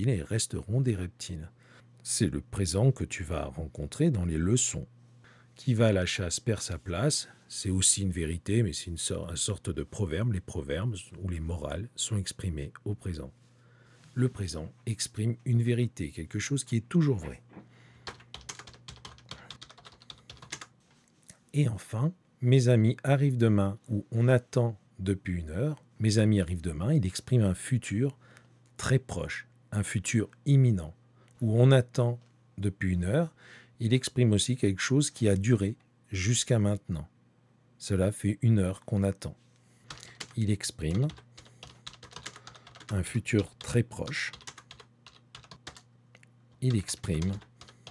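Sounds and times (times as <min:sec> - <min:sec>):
typing on computer keyboard: 0:18.0 - 0:20.7, 0:39.9 - 0:45.9, 0:46.5 - 0:47.9.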